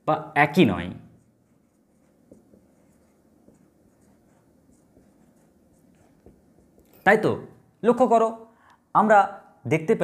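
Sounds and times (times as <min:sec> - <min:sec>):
marker scratching on whiteboard: 0:01.0 - 0:07.0
marker tapping on whiteboard: 0:01.9 - 0:06.9.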